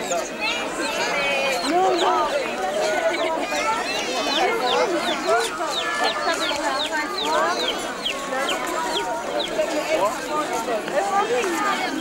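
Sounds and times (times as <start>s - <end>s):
murmur of crowd voices: 0.0s - 12.0s
chicks cheeping: 4.3s - 9.7s.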